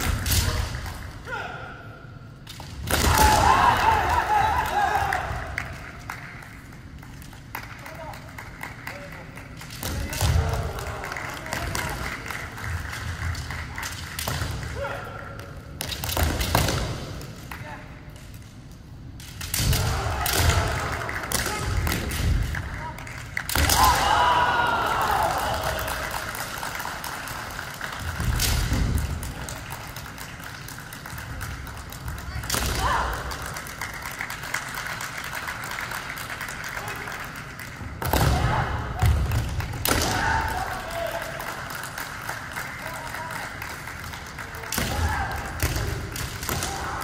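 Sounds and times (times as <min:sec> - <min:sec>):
fencers shouting: 0:02.9 - 0:05.4, 0:19.6 - 0:21.8, 0:23.5 - 0:26.0.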